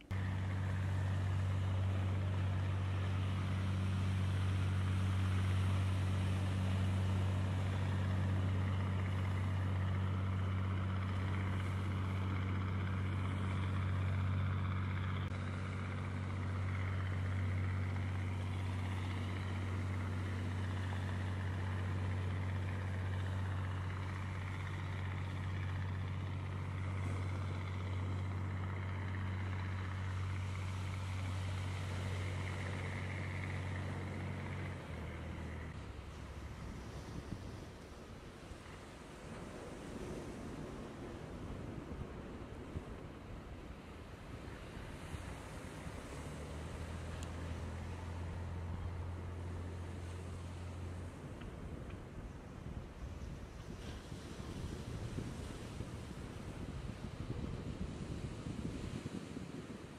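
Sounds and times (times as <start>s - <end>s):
boat engine droning: 0.0s - 59.9s.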